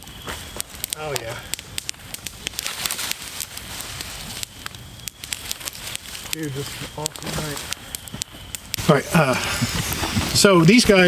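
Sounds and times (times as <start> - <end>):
campfire crackling and popping: 0.0 - 11.0.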